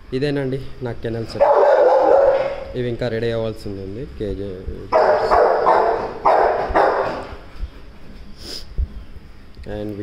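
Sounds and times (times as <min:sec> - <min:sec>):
dog barking: 0:01.4 - 0:02.8, 0:04.9 - 0:07.4.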